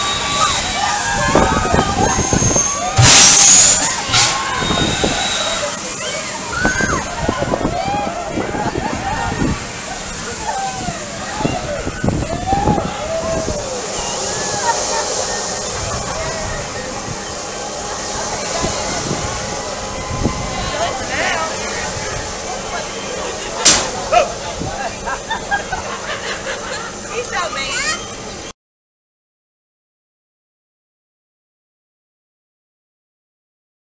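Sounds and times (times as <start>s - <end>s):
riders screaming and yelling: 0.0s - 24.7s
people chattering: 0.0s - 28.5s
steady rushing noise: 0.0s - 28.5s
sharp blast of air: 0.1s - 5.7s, 23.6s - 24.3s
steady hiss: 9.3s - 28.4s.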